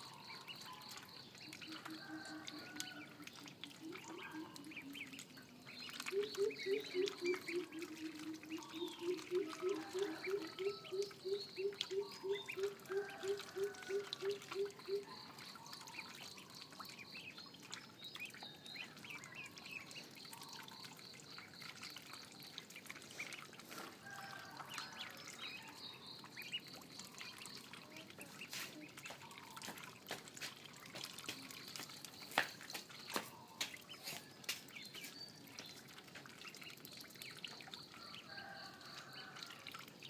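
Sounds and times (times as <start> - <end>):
ducklings peeping: 0.1 - 30.0.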